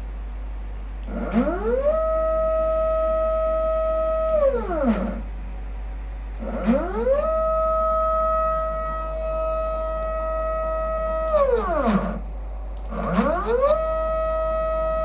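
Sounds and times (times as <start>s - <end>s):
low mains hum: 0.0s - 15.0s
stepper motor whining: 1.0s - 5.3s, 6.3s - 15.0s.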